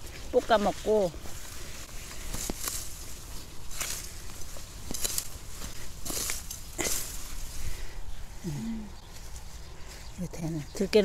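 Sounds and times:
leaves rustling: 0.0s - 11.0s.

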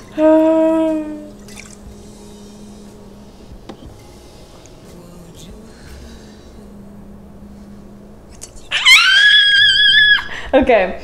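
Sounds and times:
woman squealing: 8.7s - 10.5s.

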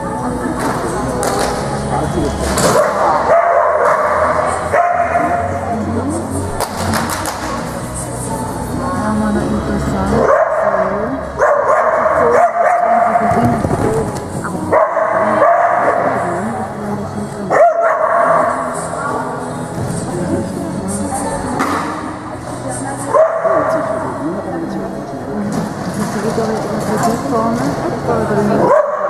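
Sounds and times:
background music: 0.0s - 29.0s
dog barking: 2.8s - 5.5s, 10.2s - 13.4s, 14.7s - 16.3s, 17.5s - 18.7s, 23.1s - 24.0s, 28.6s - 29.0s.

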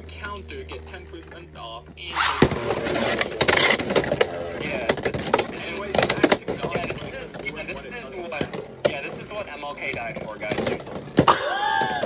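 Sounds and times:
voices: 3.9s - 12.0s.

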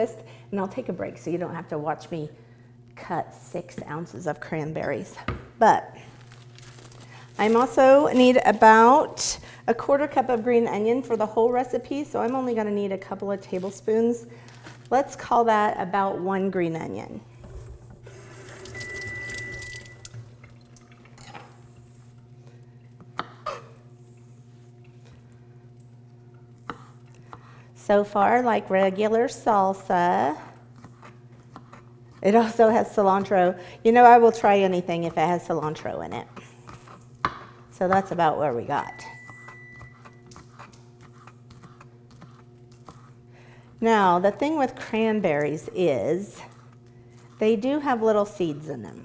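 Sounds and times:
steady low hum: 0.0s - 49.0s
kitchen faucet running: 18.0s - 21.5s.

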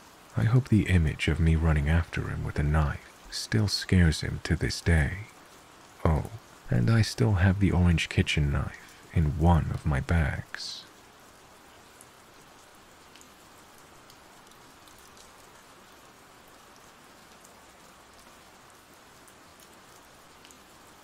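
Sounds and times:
steady rain: 0.0s - 21.0s.

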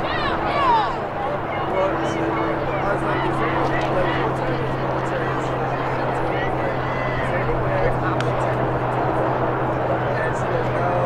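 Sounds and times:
faint distant voices: 0.0s - 11.0s
low drone: 0.0s - 11.0s.

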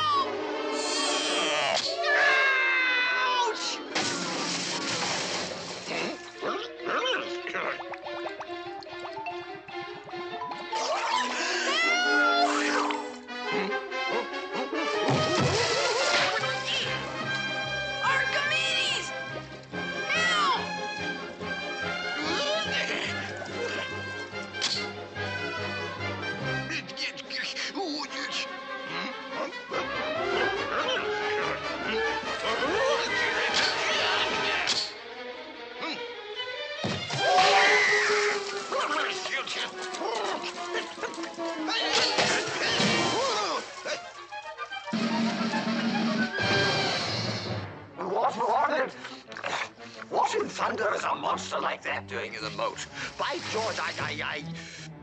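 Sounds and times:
film score music: 0.0s - 55.0s
cartoon fish crying in fright: 1.0s - 3.8s, 37.4s - 38.5s.

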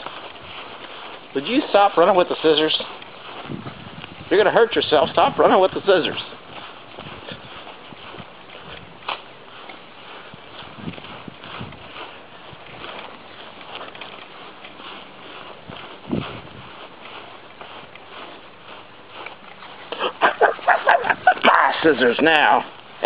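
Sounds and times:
person's voice: 20.0s - 22.7s.

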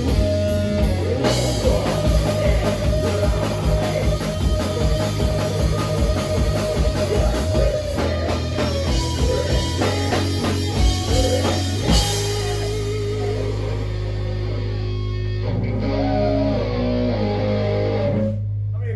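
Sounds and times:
heavy rock band playing: 0.0s - 18.5s.

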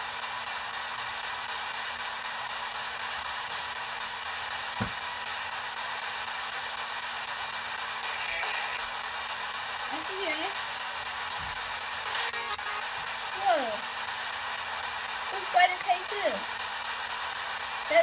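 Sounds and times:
radio static hiss: 1.4s - 18.0s
low thump: 4.8s - 5.0s
wavering radio fragments: 8.0s - 9.1s.

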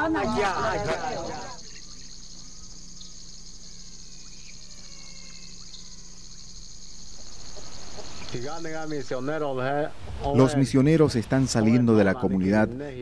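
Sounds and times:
insects trilling: 0.0s - 13.0s.

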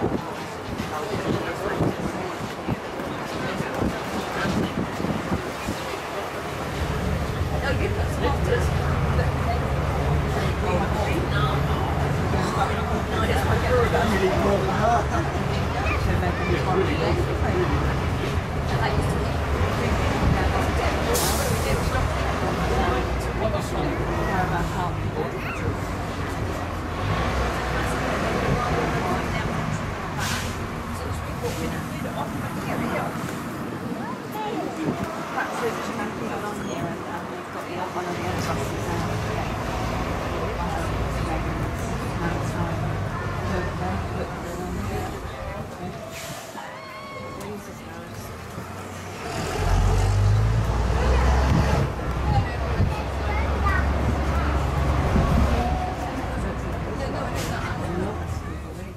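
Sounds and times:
bus engine rumble: 0.0s - 58.9s
passengers talking: 0.0s - 58.9s.

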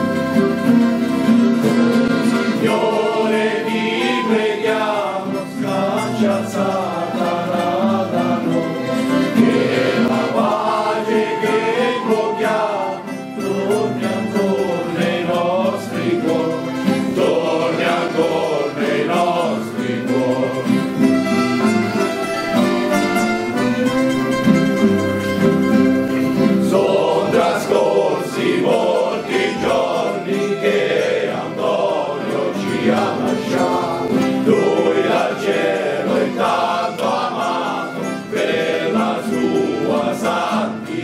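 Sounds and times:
choir singing slow song: 0.0s - 21.1s, 26.4s - 41.0s
instrumental accompaniment: 0.0s - 41.0s.

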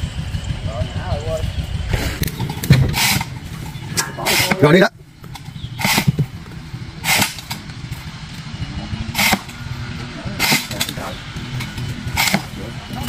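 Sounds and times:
small engine idling: 0.0s - 13.0s
short hissing swishes: 5.8s - 6.2s, 7.0s - 7.5s.

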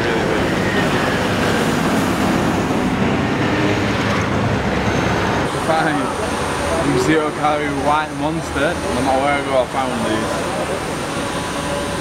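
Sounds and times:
city traffic noise: 0.0s - 12.0s.

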